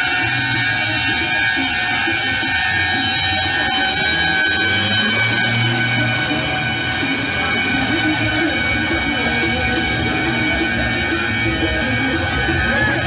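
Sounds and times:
truck air horns: 0.0s - 13.0s
truck engine rumble: 0.0s - 13.0s.

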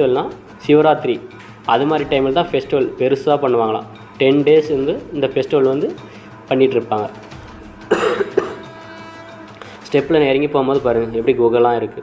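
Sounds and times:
man coughing: 7.9s - 8.8s.

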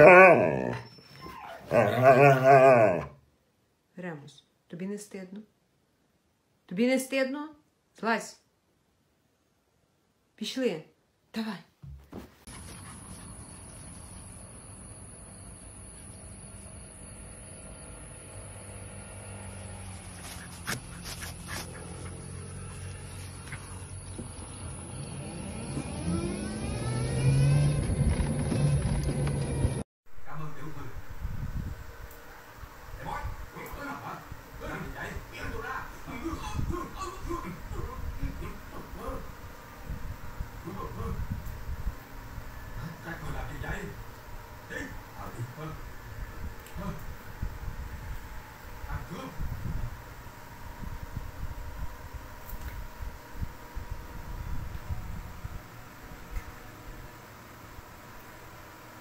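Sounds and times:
dog howling: 0.0s - 3.2s
motor scooter engine accelerating: 22.0s - 29.8s.

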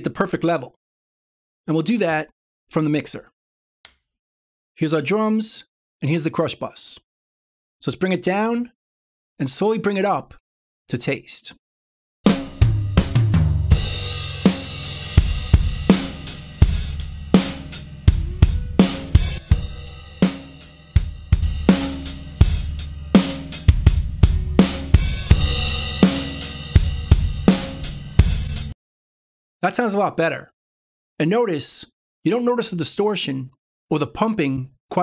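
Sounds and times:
drum kit playing a groove: 12.2s - 28.8s
distorted compressed drums: 12.3s - 28.7s.

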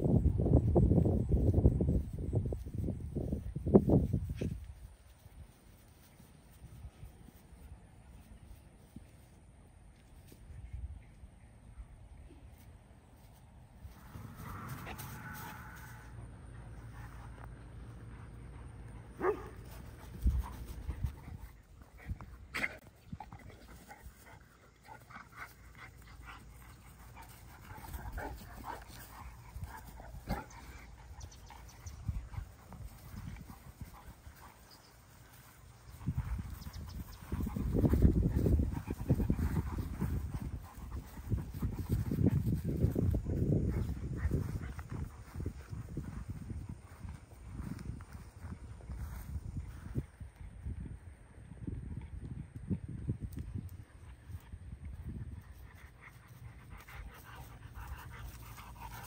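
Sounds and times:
dogs sniffing and snuffling: 0.1s - 50.4s, 53.1s - 59.0s.

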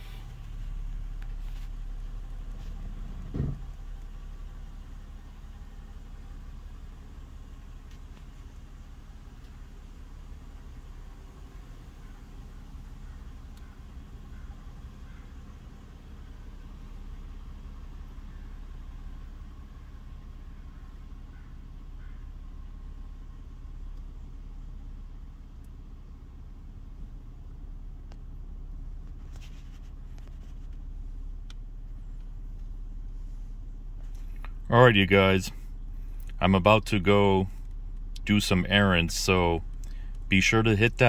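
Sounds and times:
car engine idling: 0.0s - 41.0s
faint clicks: 13.0s - 15.3s, 29.0s - 32.8s.

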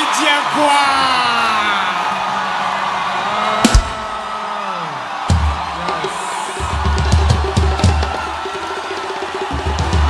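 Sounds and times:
noisy crowd: 0.0s - 10.0s
loud drum hits: 3.6s - 4.3s.

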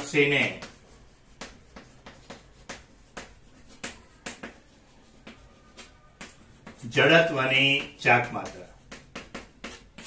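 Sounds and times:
chalk tapping on chalkboard: 0.0s - 10.0s.

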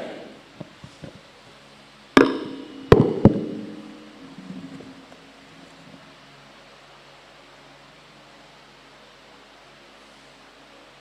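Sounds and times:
knocks on microphone: 2.2s - 3.8s.

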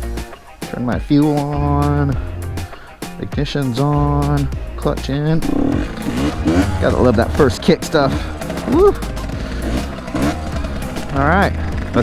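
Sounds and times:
music playing: 0.0s - 12.0s
two-stroke engine idling: 5.4s - 12.0s.

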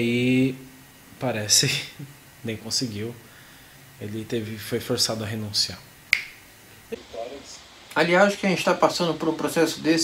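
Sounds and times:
sharp click: 6.1s - 6.4s
person speaking: 6.9s - 10.0s.

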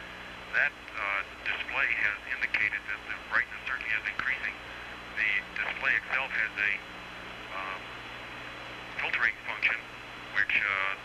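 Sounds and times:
radio link hiss and hum: 0.0s - 11.0s.

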